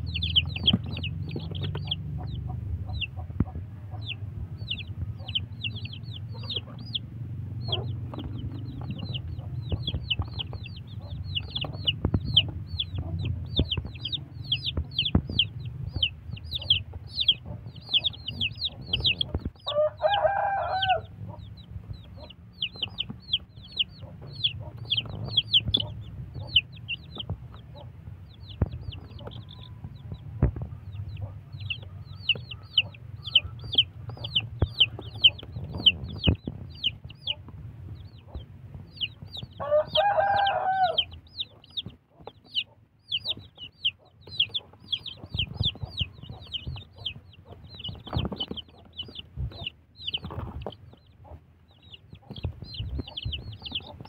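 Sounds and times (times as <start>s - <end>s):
chicks peeping: 0.0s - 54.0s
rooster crowing: 19.6s - 21.2s, 39.6s - 41.2s.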